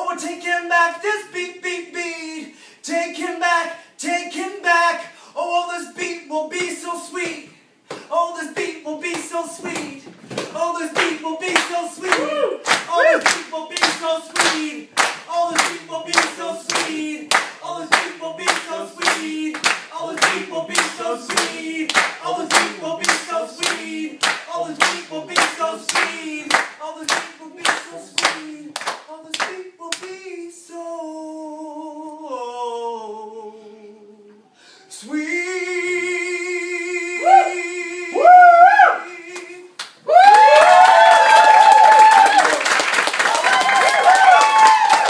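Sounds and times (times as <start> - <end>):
hands clapping a steady beat: 7.2 - 30.2, 39.4 - 45.0.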